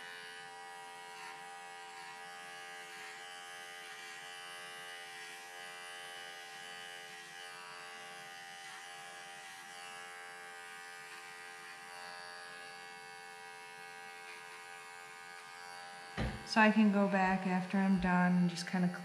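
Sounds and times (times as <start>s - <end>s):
electric clippers buzzing: 0.0s - 19.0s.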